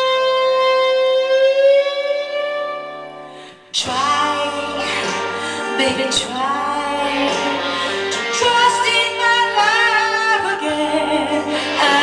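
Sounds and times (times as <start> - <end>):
electric guitar sustained note: 0.0 - 12.0.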